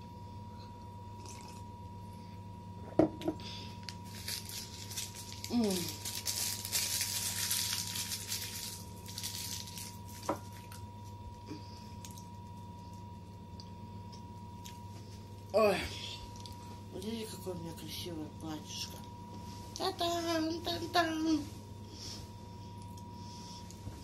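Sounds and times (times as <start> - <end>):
candy wrapper crinkling: 3.8 - 10.7.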